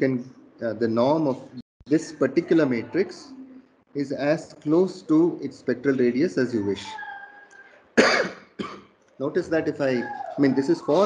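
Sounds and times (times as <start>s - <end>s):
man coughing: 8.0s - 8.8s.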